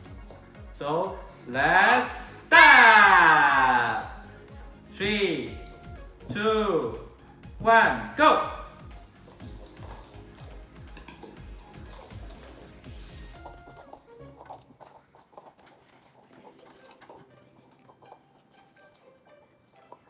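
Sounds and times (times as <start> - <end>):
background music: 0.0 - 20.0
paper cups clicking on table: 9.3 - 12.7.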